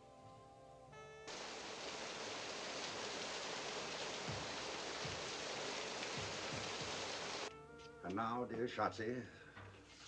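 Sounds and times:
heavy rain: 0:01.3 - 0:07.5.

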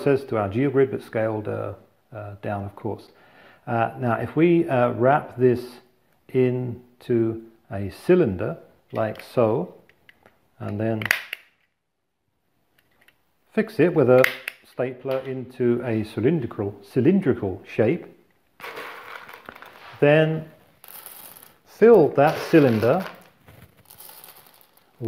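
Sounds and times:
chickpeas landing on worktop: 0:18.6 - 0:20.1, 0:22.2 - 0:24.8
dried chickpeas rattling: 0:18.6 - 0:25.0.

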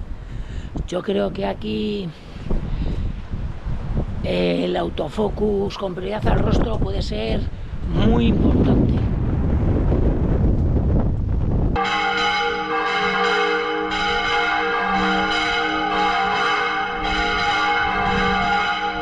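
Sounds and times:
wind rumble on microphone: 0:00.0 - 0:13.0, 0:15.3 - 0:19.0
church bells ringing: 0:11.8 - 0:19.0.

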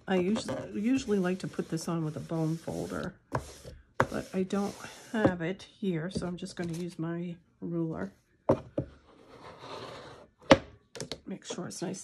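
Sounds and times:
ruler scraping across paper: 0:00.3 - 0:05.3, 0:09.1 - 0:10.2.

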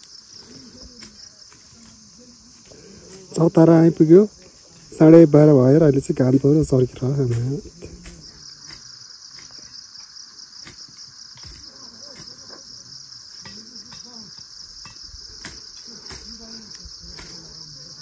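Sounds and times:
insects calling: 0:00.0 - 0:18.0
faint distant voices: 0:11.4 - 0:18.0.

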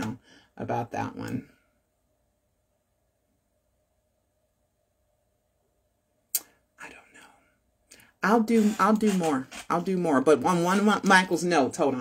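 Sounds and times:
woman speaking: 0:00.0 - 0:01.6, 0:08.2 - 0:12.0.

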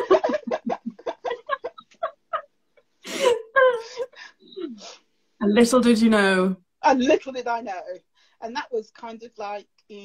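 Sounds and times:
women laughing: 0:00.0 - 0:04.4.

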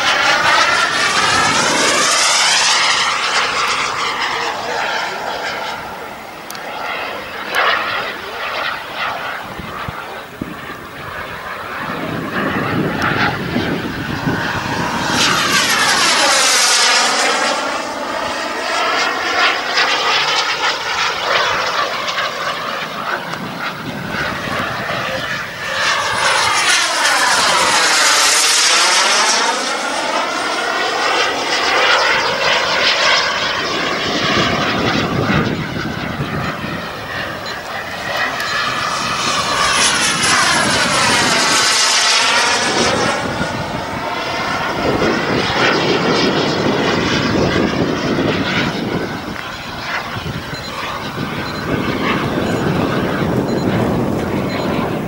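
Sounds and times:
model jet turbine hissing: 0:00.0 - 0:47.7
jet swooshing past: 0:00.0 - 0:55.0.

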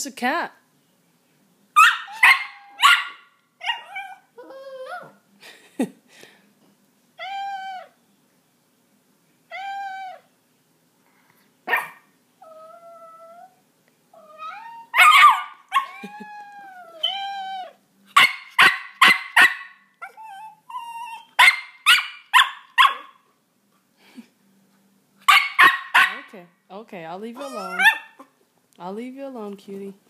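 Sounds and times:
dog barking: 0:01.8 - 0:03.9, 0:11.7 - 0:12.1, 0:15.0 - 0:15.6, 0:18.2 - 0:19.8, 0:21.4 - 0:23.2, 0:25.2 - 0:26.3, 0:27.6 - 0:28.3.

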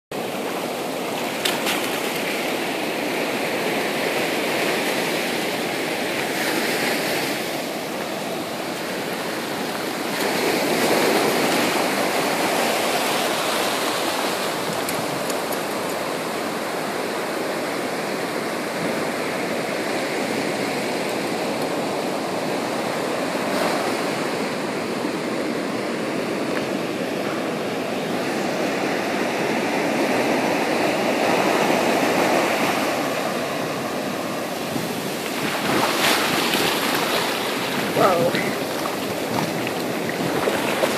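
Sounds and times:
waves breaking on a beach: 0:00.1 - 0:40.9.

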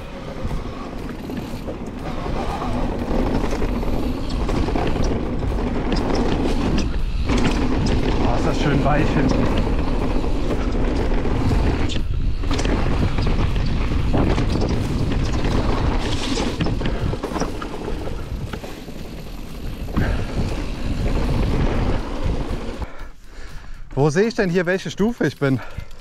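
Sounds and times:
tyres rumbling on dirt: 0:00.0 - 0:23.0
wind buffeting microphone: 0:00.0 - 0:23.0
bike clicks and rattles: 0:00.0 - 0:26.0.

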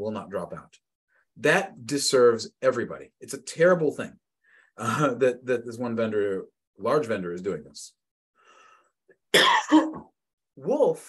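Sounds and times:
man coughing: 0:09.3 - 0:10.1.

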